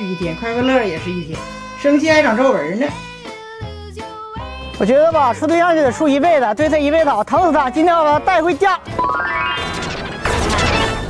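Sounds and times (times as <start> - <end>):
rising pitched tone sweep: 8.9 - 10.8
loud crash-like hit: 9.0 - 11.0.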